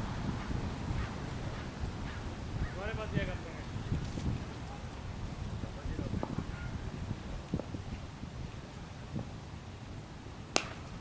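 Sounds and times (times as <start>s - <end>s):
faint outdoor background noise: 0.0s - 11.0s
cricket ball striking bat: 10.5s - 10.9s.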